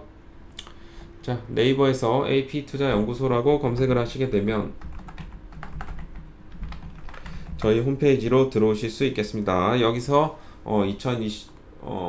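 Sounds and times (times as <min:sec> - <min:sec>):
computer keyboard typing: 0:04.8 - 0:07.9.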